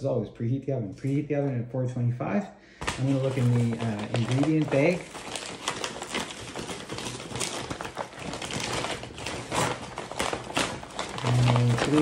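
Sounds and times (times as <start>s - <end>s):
paper bag crinkling and rustling: 2.8s - 12.0s.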